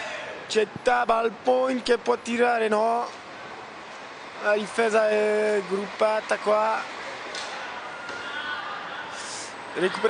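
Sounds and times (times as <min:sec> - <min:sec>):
court noise: 0:00.0 - 0:10.0
faint crowd chatter: 0:02.8 - 0:10.0.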